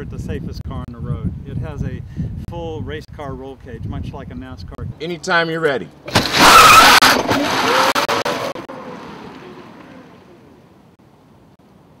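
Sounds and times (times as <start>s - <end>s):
tyre noise: 6.0s - 10.6s.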